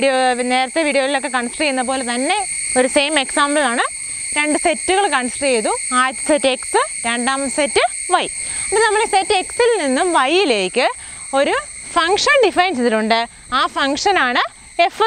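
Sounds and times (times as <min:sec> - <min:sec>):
insect chorus droning: 0:00.0 - 0:15.0
woman lecturing: 0:00.0 - 0:15.0.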